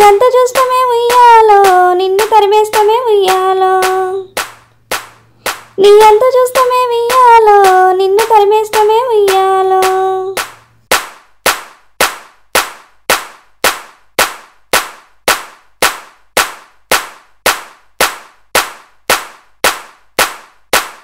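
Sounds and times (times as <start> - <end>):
sharp percussive hits: 0.0 - 21.0.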